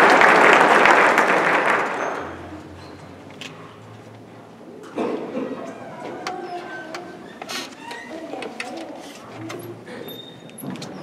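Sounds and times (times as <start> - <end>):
faint murmuring voices: 4.5 - 11.0
clicks and knocks of handling: 6.0 - 9.7.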